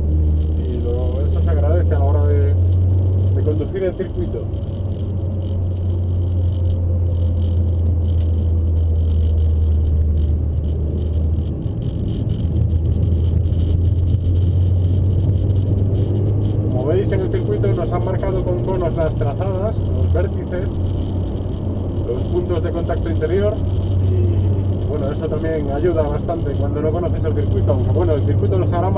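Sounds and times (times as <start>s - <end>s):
car engine droning: 0.0s - 28.9s
road noise: 0.0s - 28.9s.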